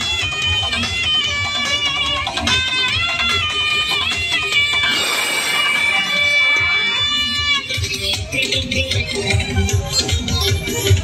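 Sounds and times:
loud dance music: 2.3 - 11.0.

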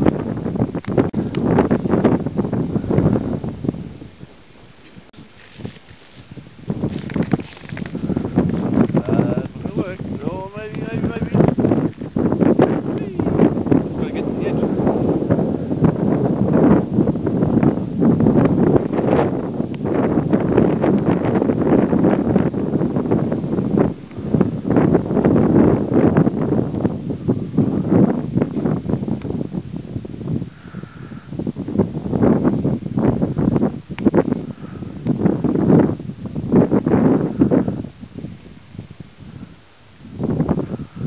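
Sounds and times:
gusty wind buffeting microphone: 0.0 - 41.0.

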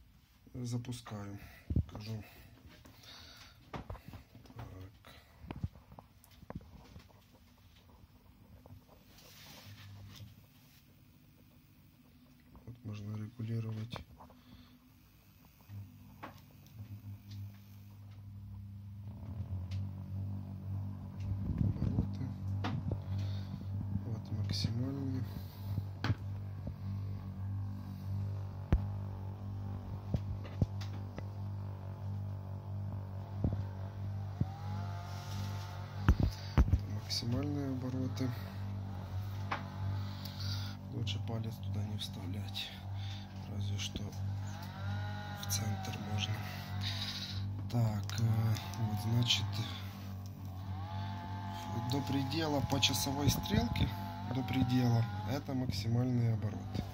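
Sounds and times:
magnetic stirrer hum: 0.0 - 56.9.

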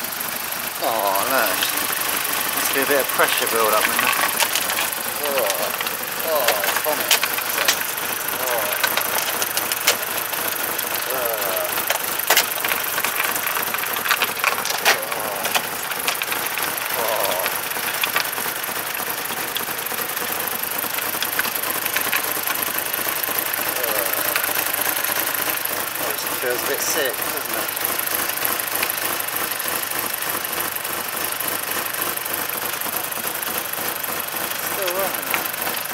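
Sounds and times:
car engine running with hiss: 0.0 - 35.9
sharp spattering clicks: 0.8 - 30.4.

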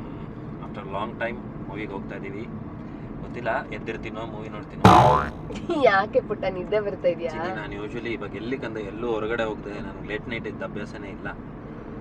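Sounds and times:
comedic boing sound effect: 4.8 - 5.5.

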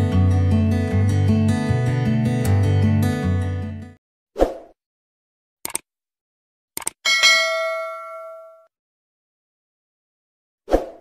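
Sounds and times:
quick double clicks: 5.6 - 5.9, 6.8 - 7.0
bright bell ding: 7.1 - 8.7.

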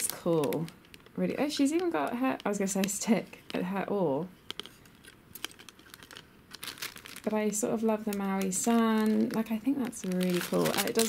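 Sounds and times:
tissue paper crinkling: 0.0 - 3.0, 4.5 - 11.0.

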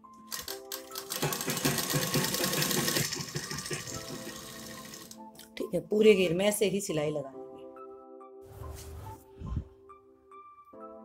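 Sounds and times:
background music: 0.0 - 11.0
sewing machine stitching: 0.3 - 5.2.

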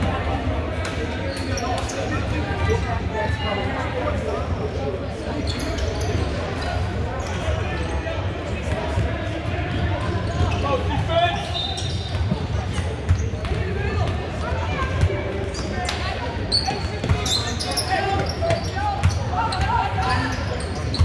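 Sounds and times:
voices of players and spectators: 0.0 - 21.0.

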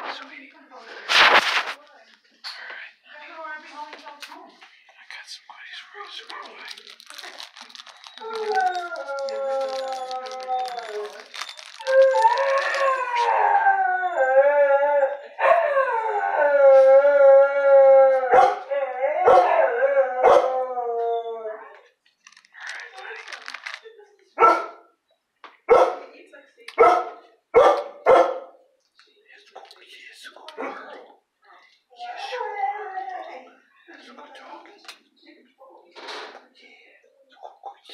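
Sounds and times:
dog howling: 7.8 - 21.7
dog barking: 18.3 - 19.6, 20.2 - 20.5, 24.4 - 24.9, 25.7 - 26.1, 26.8 - 28.6.

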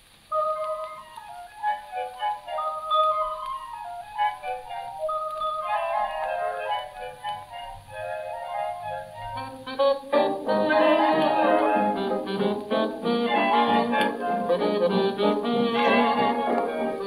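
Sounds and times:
record hiss: 0.0 - 17.0
dance orchestra record music: 0.3 - 17.0.

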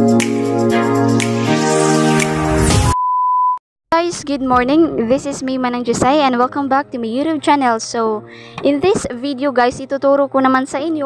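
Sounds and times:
electronic music with keyboard chords: 0.0 - 3.0.

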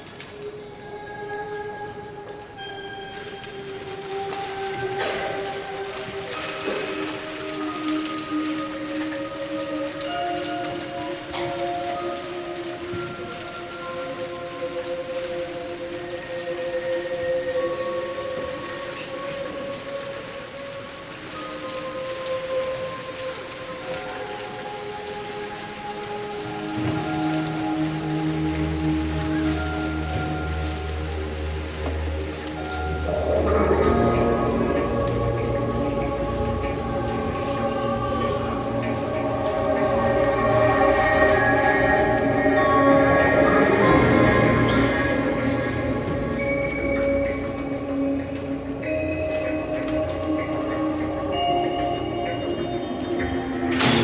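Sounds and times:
long held notes: 0.0 - 54.0
paper crinkling and rustling: 0.0 - 54.0.

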